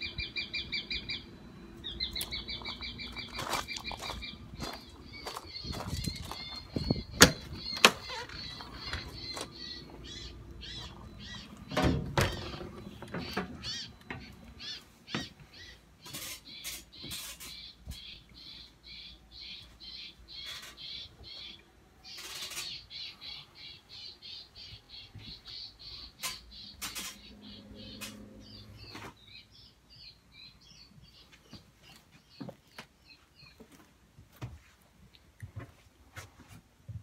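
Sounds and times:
bird chirping: 0.0 - 33.6
footsteps on trailer floor: 2.2 - 11.4, 31.3 - 34.8, 35.5 - 37.0.

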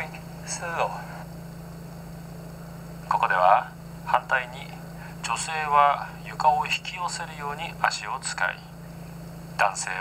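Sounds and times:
low electrical hum: 0.0 - 10.0
thin high whines: 0.0 - 10.0.

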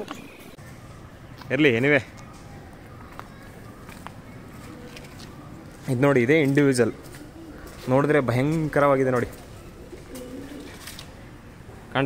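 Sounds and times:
pigeon cooing: 3.0 - 11.9.

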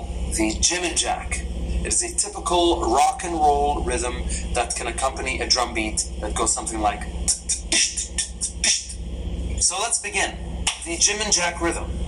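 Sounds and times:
man beatboxing drum beat: 7.2 - 9.0.

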